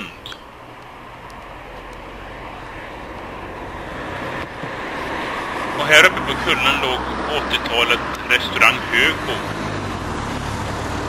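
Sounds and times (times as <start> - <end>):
vehicle rumble and hiss: 0.0 - 11.0.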